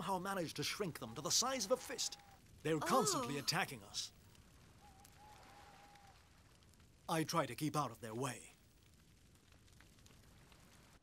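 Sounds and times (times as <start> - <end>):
faint campfire crackle: 0.0 - 11.0.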